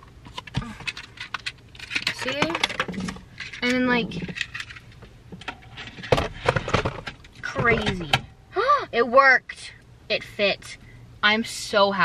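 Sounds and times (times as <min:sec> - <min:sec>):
plastic clicks and rattles: 0:00.3 - 0:04.8.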